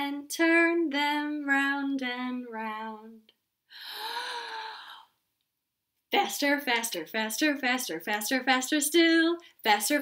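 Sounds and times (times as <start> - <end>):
woman's breathy ooh: 3.7 - 5.2.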